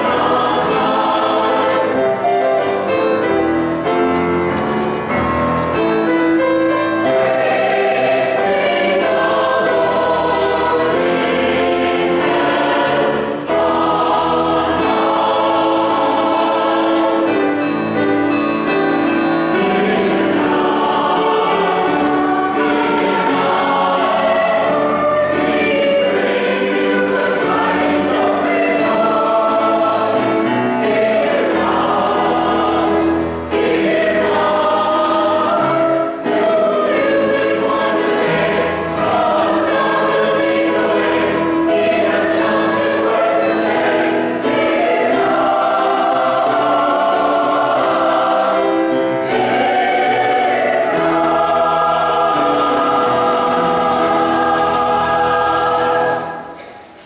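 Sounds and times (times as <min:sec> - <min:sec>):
church choir singing: 0:00.0 - 0:57.0.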